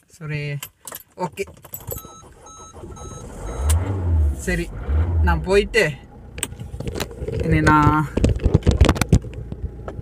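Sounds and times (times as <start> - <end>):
low steady car hum: 1.6 - 10.0.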